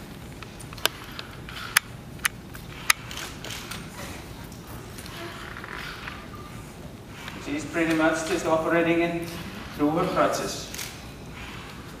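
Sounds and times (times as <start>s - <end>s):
faint low mechanical hum: 0.0s - 12.0s
sharp mechanical clicks: 0.4s - 3.8s.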